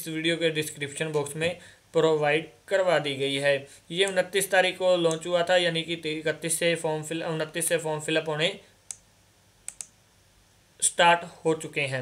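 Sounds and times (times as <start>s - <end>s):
computer mouse clicks: 8.8s - 10.0s.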